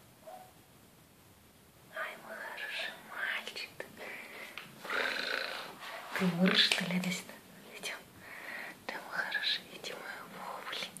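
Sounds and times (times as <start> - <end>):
woman whispering: 1.9 - 4.3, 4.9 - 8.1, 8.8 - 11.0.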